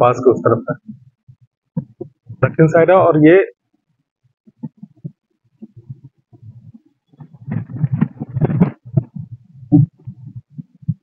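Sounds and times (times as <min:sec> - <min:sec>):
low thumps and rumbling: 0:04.5 - 0:11.0.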